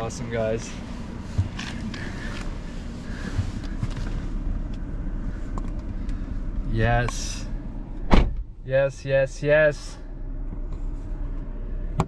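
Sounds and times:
steady low rumble: 0:00.0 - 0:12.0
rustling and small knocks: 0:01.2 - 0:02.6, 0:03.2 - 0:04.9.

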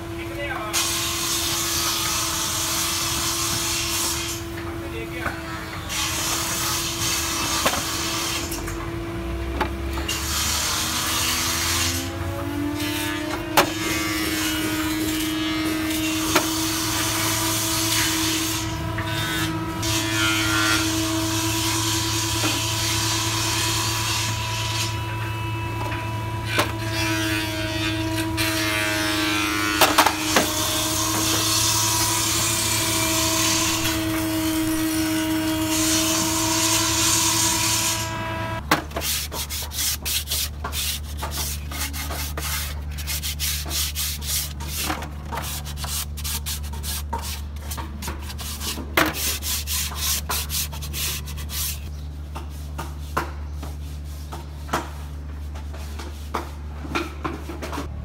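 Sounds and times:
sandpaper rubbing on wood: 0:28.4 - 0:38.2, 0:38.9 - 0:51.9.

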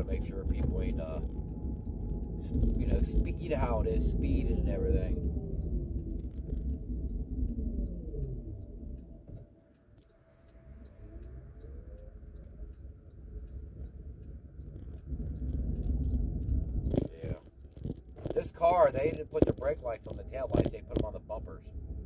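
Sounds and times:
car road rumble: 0:00.0 - 0:22.0
car whine: 0:00.0 - 0:22.0.

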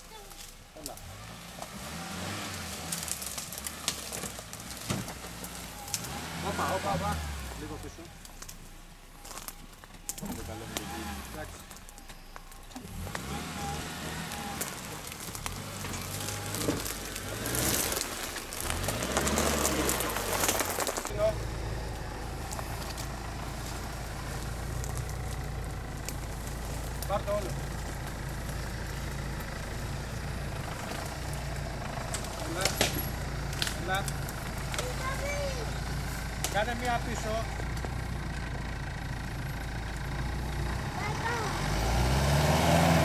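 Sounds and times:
engine revving: 0:00.0 - 0:08.7, 0:10.1 - 0:43.0
engine idling: 0:00.0 - 0:42.2.

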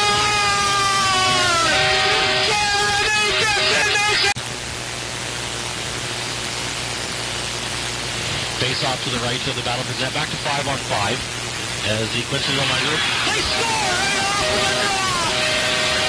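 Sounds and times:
arena noise hiss: 0:00.0 - 0:16.0
arena goal horn: 0:01.3 - 0:03.8.

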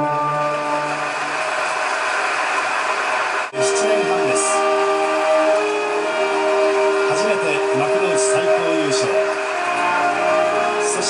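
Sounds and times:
band holding long notes: 0:00.0 - 0:11.0
faint man's voice: 0:03.6 - 0:05.5, 0:10.7 - 0:11.0.

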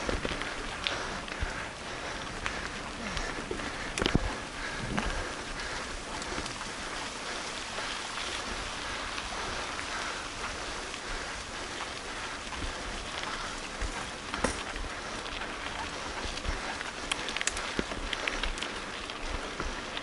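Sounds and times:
bike tyres rolling on gravel: 0:00.0 - 0:20.0.

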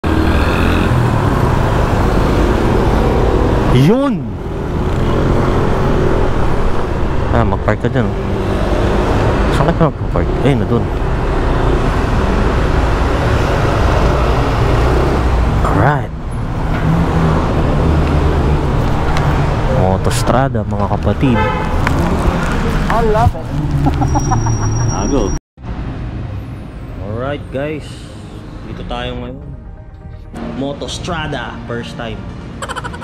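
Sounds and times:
wind and road noise: 0:00.0 - 0:33.0.

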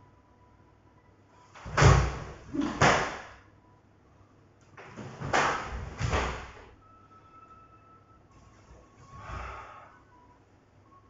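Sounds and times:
bare feet thudding on wooden floor: 0:01.6 - 0:03.3, 0:04.8 - 0:06.6.

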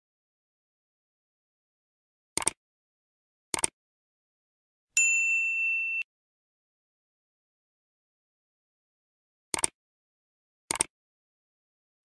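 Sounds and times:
notification bell ding: 0:05.0 - 0:06.1.

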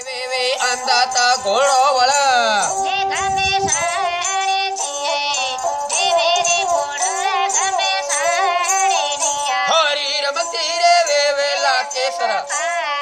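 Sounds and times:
person singing folk song: 0:00.0 - 0:13.0.

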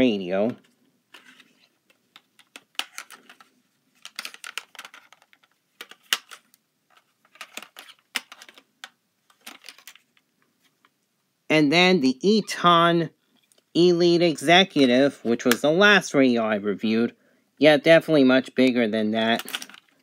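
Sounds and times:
plastic radio cases clicking and scraping: 0:00.5 - 0:10.9, 0:19.3 - 0:20.0.

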